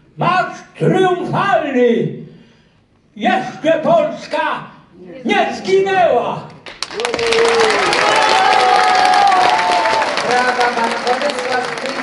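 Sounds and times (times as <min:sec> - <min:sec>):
audience applauding: 0:06.6 - 0:12.0.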